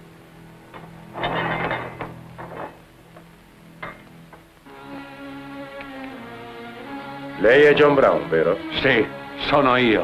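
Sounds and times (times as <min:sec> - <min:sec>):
metal bolt scraping rattle: 0:01.1 - 0:02.8.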